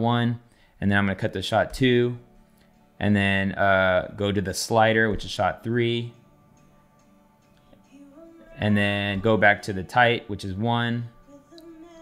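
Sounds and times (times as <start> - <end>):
faint band music: 0.0 - 12.0.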